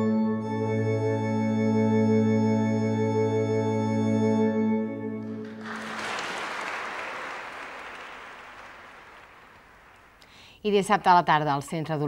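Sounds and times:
congregation applauding: 5.2 - 10.4.

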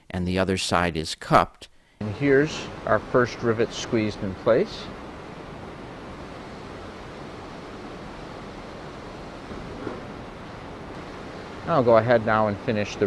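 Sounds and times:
room tone hiss: 0.1 - 13.0
faint knock: 9.5 - 10.1.

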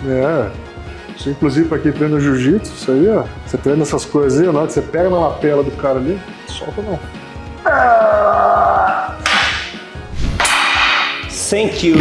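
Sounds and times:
whip cracks: 9.2 - 9.8.

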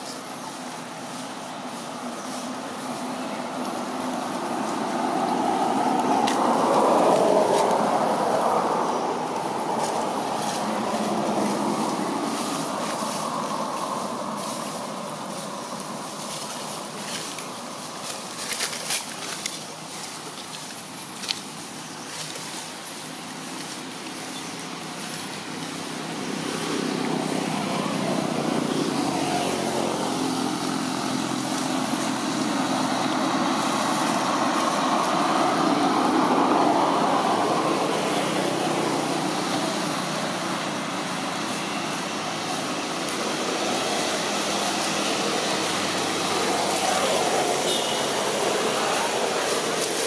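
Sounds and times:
road traffic passing: 0.0 - 50.0.

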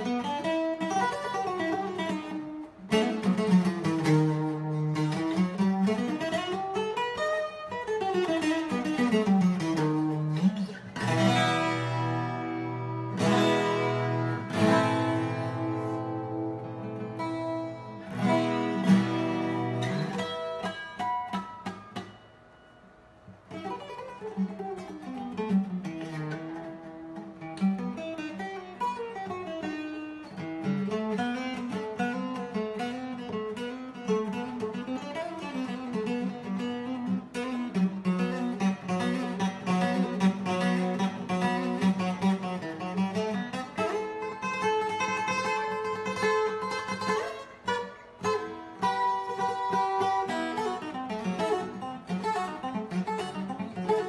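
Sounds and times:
twelve-string acoustic guitar: 0.0 - 54.0.

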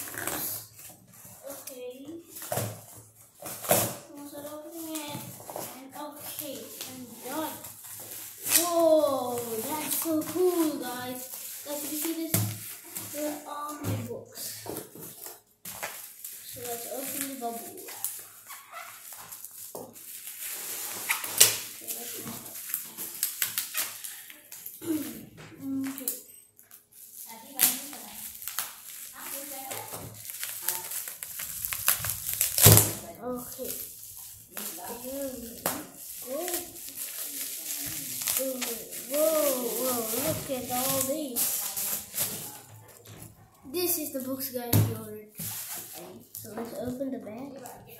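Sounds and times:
plastic shrink wrap crinkling: 0.0 - 47.9.

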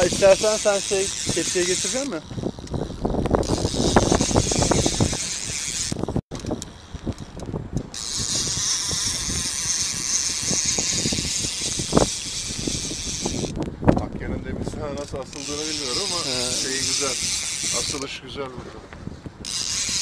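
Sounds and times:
fishing reel cranking: 0.0 - 13.6, 15.0 - 18.2, 19.4 - 20.0.

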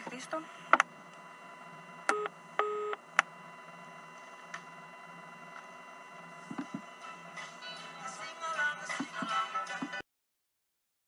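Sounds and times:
faint telephone line hum: 0.0 - 10.0.

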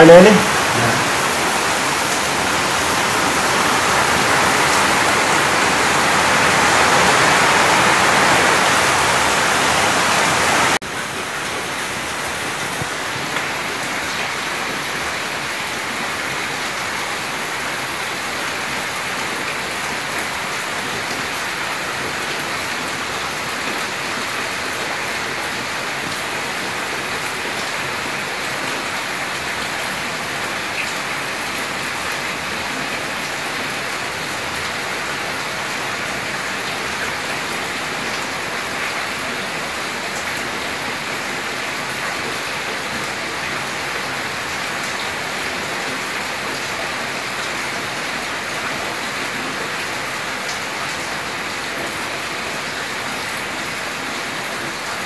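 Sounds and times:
steady hiss like heavy rain: 0.0 - 55.0.

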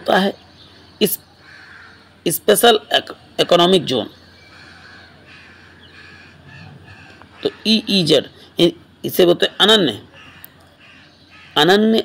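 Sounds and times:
faint bird calls: 0.3 - 2.3, 3.1 - 12.0.

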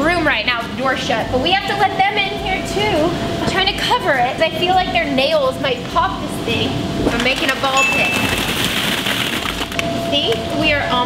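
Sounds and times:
plastic balls clattering: 7.1 - 10.4.

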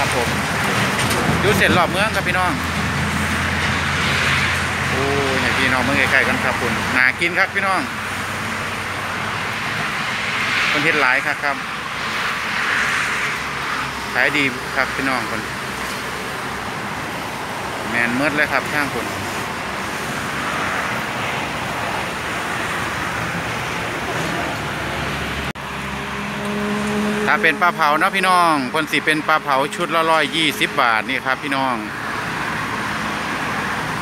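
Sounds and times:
roadside traffic noise: 0.0 - 34.0
vehicle passing by: 0.0 - 34.0.

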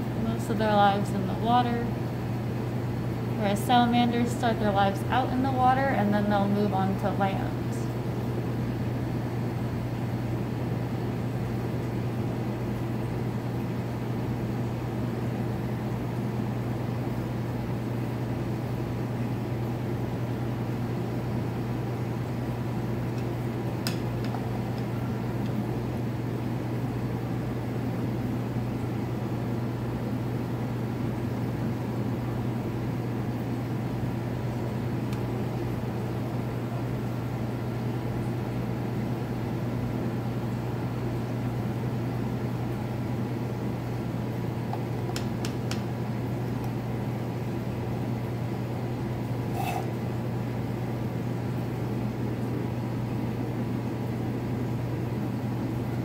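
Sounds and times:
low mechanical hum: 0.0 - 56.0.

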